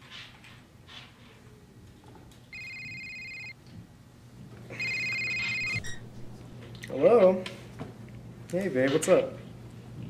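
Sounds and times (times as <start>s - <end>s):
electronic phone ringing: 2.5s - 3.6s, 4.7s - 6.5s.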